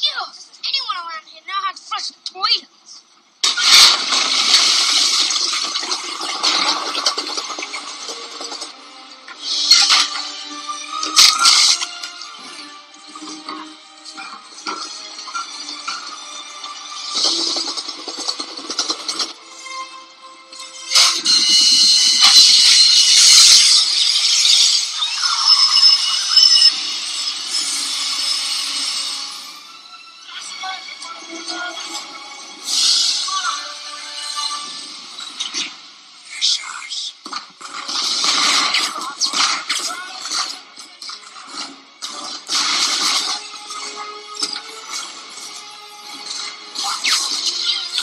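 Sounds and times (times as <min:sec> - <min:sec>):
toilet flushing: 0:03.7 - 0:08.8.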